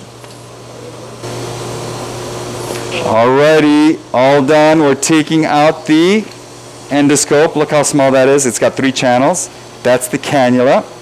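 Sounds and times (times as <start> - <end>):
machine hum with airy hiss: 0.0 - 11.0.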